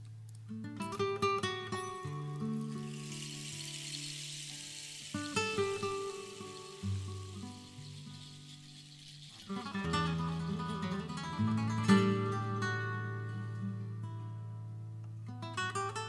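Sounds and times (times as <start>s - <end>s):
acoustic guitar plucking: 0.0s - 16.0s
oud plucking: 2.3s - 13.1s.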